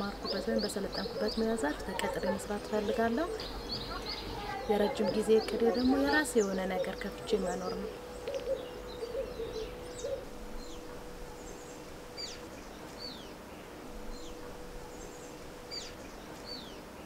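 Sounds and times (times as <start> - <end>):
faint steady hum: 0.0 - 17.0
small birds chirping: 0.0 - 17.0.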